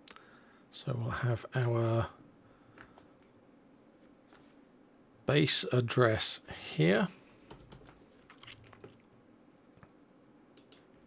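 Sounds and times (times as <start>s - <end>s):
faint keyboard typing: 7.4s - 9.0s, 10.6s - 11.0s.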